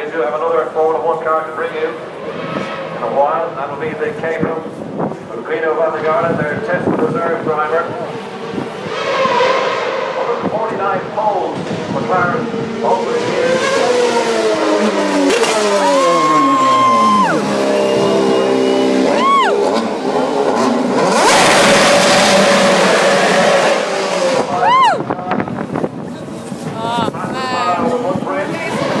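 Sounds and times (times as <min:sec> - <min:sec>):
racing car engine revving: 0:08.1 - 0:24.6
sharp engine rev blips: 0:13.7 - 0:24.5.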